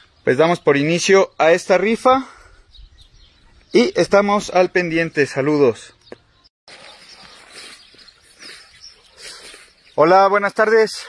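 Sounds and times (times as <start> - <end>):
soft outdoor rustling: 0.0 - 11.0.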